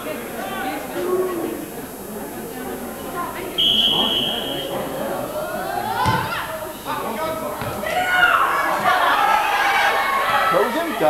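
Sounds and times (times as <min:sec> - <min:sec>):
spectators' voices: 0:00.0 - 0:11.0
referee's whistle: 0:03.6 - 0:04.8
ball kicked thud: 0:06.0 - 0:06.3.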